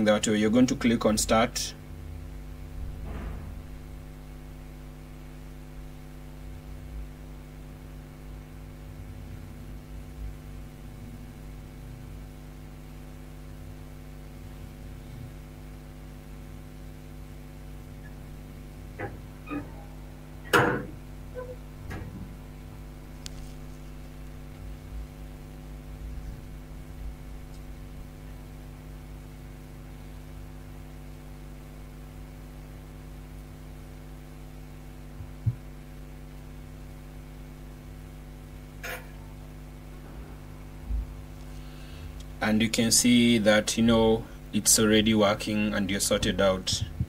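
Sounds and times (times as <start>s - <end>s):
electrical hum: 0.0s - 47.0s.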